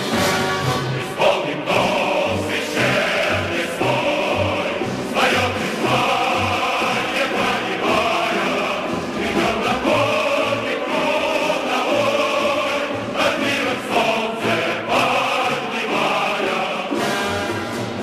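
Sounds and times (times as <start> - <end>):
choir singing with orchestra: 0.0 - 18.0.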